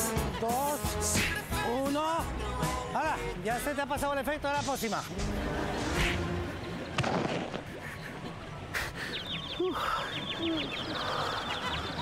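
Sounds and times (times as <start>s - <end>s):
background music: 0.0s - 7.4s.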